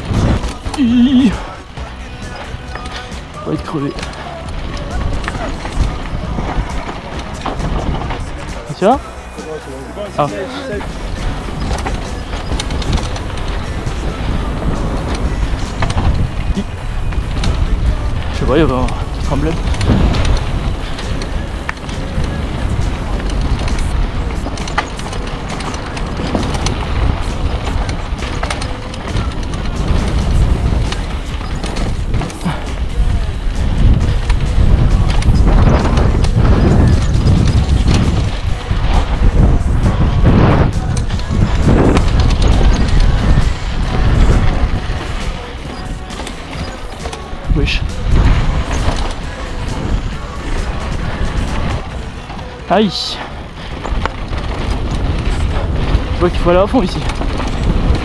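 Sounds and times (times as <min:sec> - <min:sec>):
wind on microphone: 0:00.0 - 0:09.1, 0:10.6 - 0:58.0
bike rattling over rocks: 0:00.0 - 0:58.0
bike tyres rolling over stones: 0:00.0 - 0:58.0.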